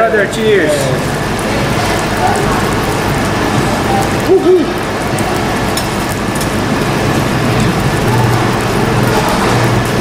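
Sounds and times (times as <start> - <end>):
constant low hum: 0.0 - 10.0
meat sizzling on grill: 0.1 - 10.0.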